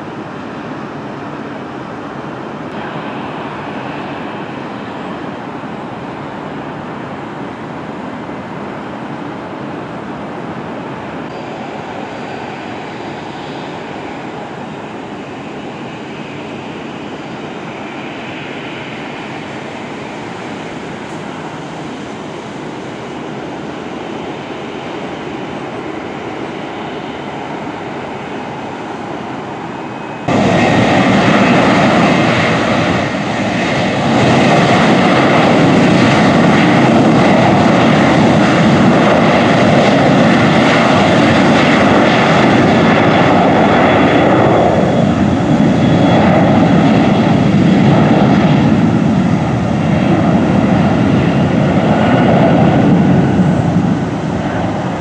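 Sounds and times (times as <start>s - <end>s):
airplane engine noise: 0.0s - 55.0s.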